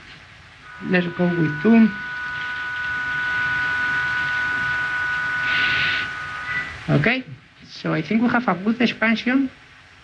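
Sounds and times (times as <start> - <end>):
hiss: 0.0 - 7.1
steady electronic tone: 0.6 - 7.3.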